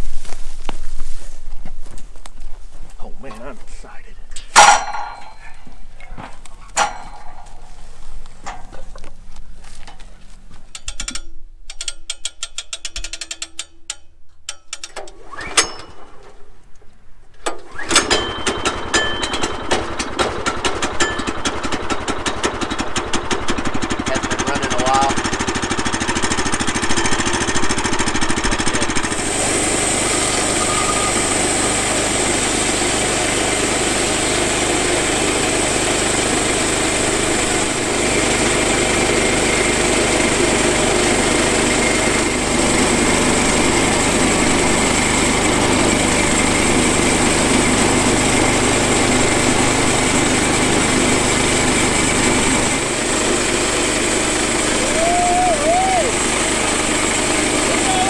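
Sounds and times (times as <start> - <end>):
band saw cutting log: 17.6 - 58.0
small gasoline engine running: 17.6 - 58.0.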